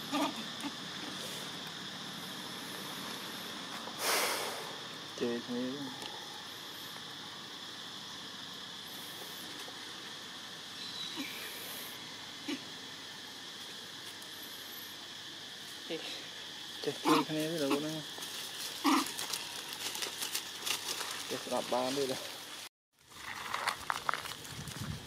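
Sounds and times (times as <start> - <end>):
high-pitched insect drone: 0.0 - 25.0.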